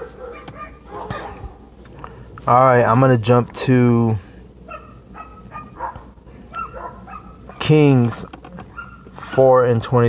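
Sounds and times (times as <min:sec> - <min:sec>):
dog barking faintly: 0:00.0 - 0:01.6, 0:04.7 - 0:07.7
steady low hum: 0:00.0 - 0:10.0.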